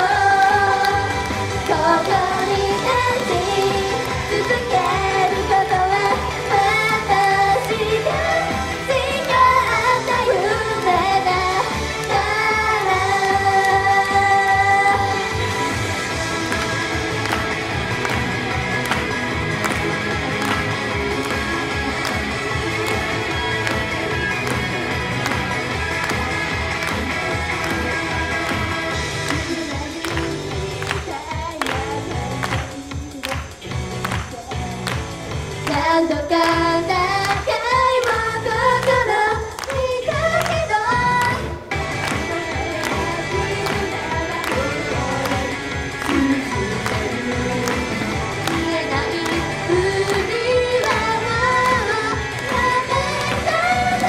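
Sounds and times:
backing track with steady beat: 0.0s - 54.0s
women singing pop song: 0.0s - 54.0s.

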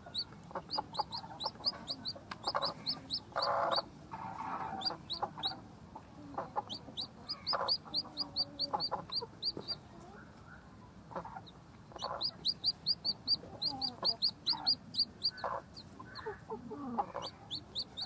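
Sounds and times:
chicks peeping: 0.0s - 18.0s.

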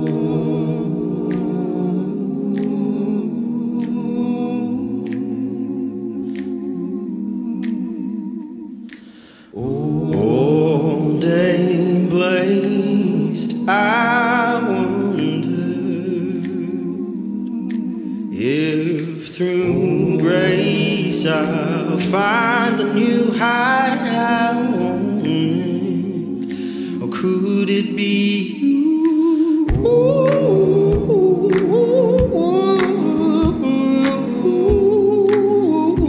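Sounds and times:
soft hissing tick: 7.6s - 7.8s, 8.8s - 9.6s, 26.4s - 27.9s
humming on held notes: 29.2s - 36.0s.

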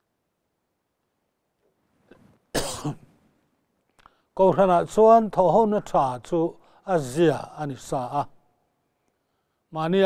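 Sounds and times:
man coughing: 2.5s - 3.1s.

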